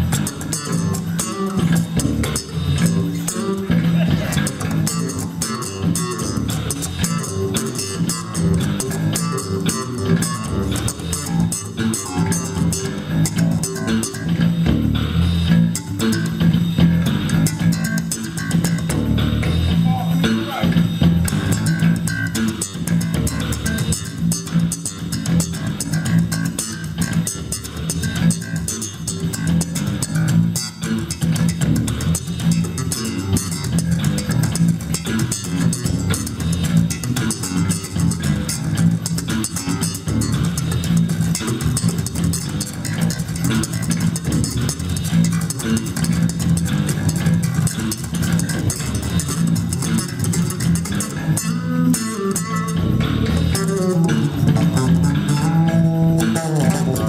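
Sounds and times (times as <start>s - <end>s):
electric bass guitars jamming: 0.0s - 57.0s.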